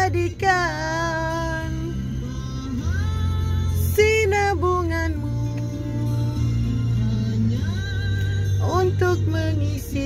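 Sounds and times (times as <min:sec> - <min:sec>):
bass accompaniment: 0:00.0 - 0:10.0
woman singing: 0:00.0 - 0:10.0.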